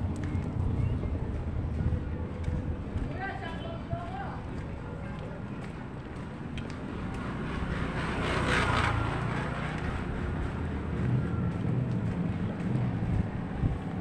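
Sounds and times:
low engine hum: 0:00.0 - 0:14.0
vehicles passing: 0:00.0 - 0:14.0.

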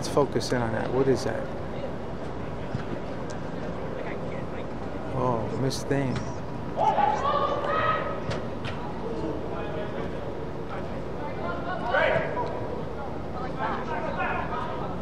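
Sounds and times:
crowd and room hubbub: 0:00.0 - 0:15.0
players calling and shouting: 0:00.0 - 0:15.0.

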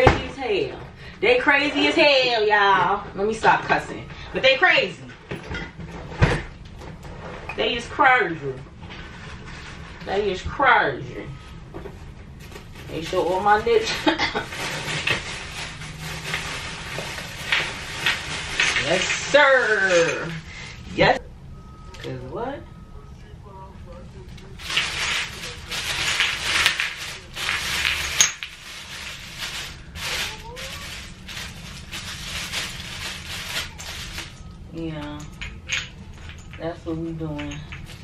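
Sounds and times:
rummaging in a bag: 0:12.3 - 0:20.5, 0:24.6 - 0:34.5.

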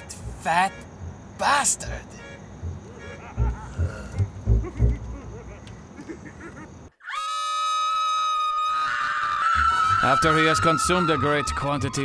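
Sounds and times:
woman screaming: 0:07.0 - 0:11.9.

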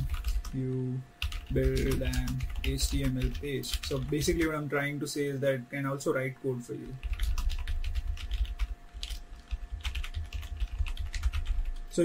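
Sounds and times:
typing on computer keyboard: 0:00.0 - 0:00.5, 0:01.2 - 0:04.5, 0:07.0 - 0:11.8.

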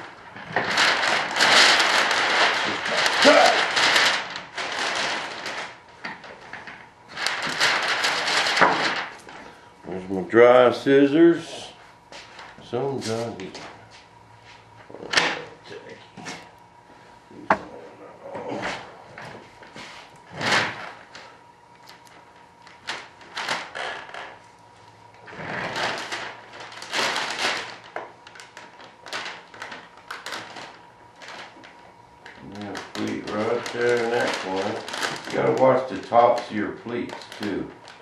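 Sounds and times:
plastic film crinkling: 0:00.0 - 0:11.4, 0:19.2 - 0:24.5, 0:25.2 - 0:38.0.

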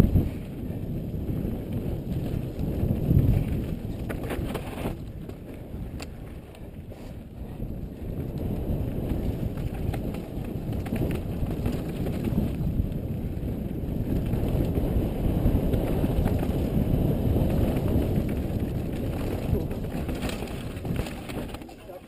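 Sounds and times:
bike tyres rolling on dirt: 0:00.0 - 0:22.0
wind buffeting microphone: 0:00.0 - 0:22.0.

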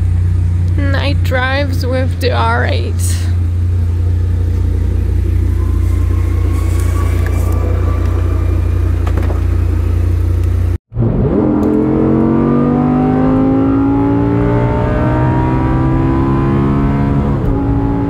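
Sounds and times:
sports car engine accelerating: 0:00.0 - 0:18.0.

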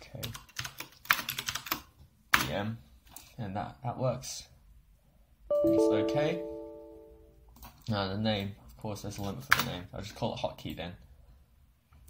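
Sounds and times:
keyboard typing: 0:00.2 - 0:01.9.

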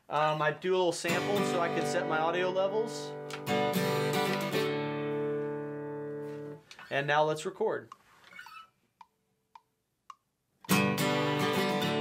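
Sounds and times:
acoustic guitar strumming: 0:01.0 - 0:06.7, 0:10.7 - 0:12.0.

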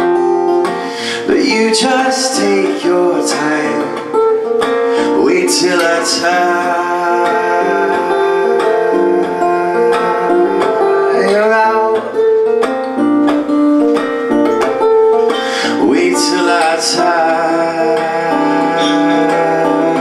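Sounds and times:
acoustic guitar picked chords: 0:00.0 - 0:20.0
man singing: 0:00.6 - 0:12.6, 0:15.3 - 0:20.0.

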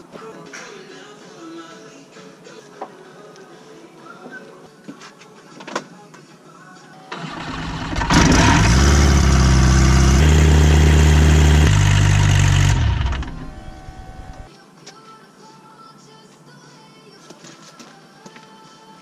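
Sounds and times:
propeller spinning down: 0:07.2 - 0:14.5
aircraft engine running: 0:07.4 - 0:14.5.

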